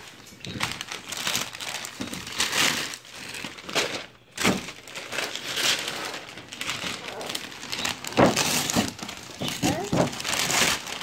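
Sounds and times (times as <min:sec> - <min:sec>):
wrapping paper crinkling: 0:00.0 - 0:11.0.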